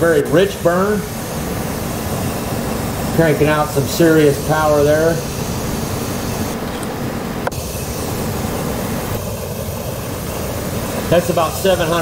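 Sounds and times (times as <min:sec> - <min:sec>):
burner roaring with forced air: 0:00.0 - 0:12.0.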